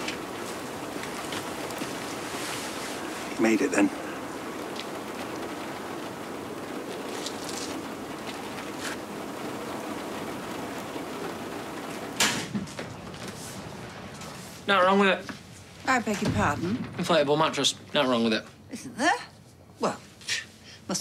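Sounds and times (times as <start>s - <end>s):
street background hiss: 0.0s - 21.0s.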